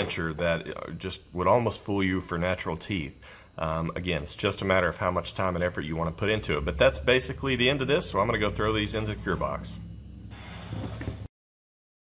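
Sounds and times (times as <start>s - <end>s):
low room hum: 0.0s - 11.3s
faint hiss: 10.3s - 11.3s.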